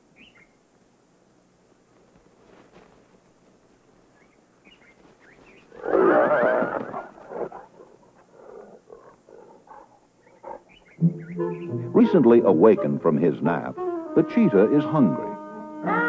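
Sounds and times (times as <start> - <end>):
small bird chirps: 0.2 - 0.6, 4.1 - 5.8
hyena snarling growl: 5.7 - 10.7
shorter quieter animal calls: 10.4 - 16.0.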